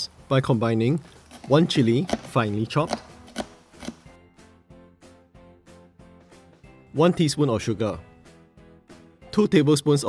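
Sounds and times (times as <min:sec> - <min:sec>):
cleaver chopping on wooden board: 0:01.3 - 0:04.1.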